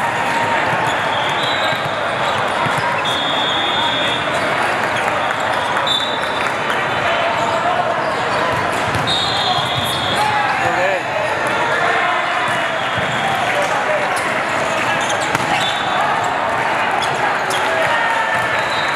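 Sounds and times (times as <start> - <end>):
volleyballs hit and bouncing: 0.0 - 3.2, 8.3 - 10.9, 12.4 - 18.6
crowd and player voices: 0.0 - 18.9
referee whistle blasts: 1.1 - 2.4, 3.0 - 4.4, 5.8 - 6.3, 9.0 - 10.3, 15.4 - 16.0, 18.5 - 18.9.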